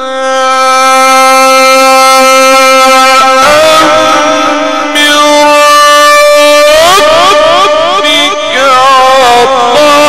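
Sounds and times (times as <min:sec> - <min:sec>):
man reciting in long held notes: 0:00.0 - 0:10.0.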